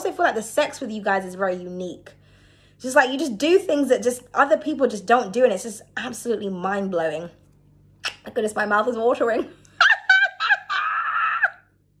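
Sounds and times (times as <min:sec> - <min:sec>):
woman giggling and squealing: 0:09.8 - 0:11.6.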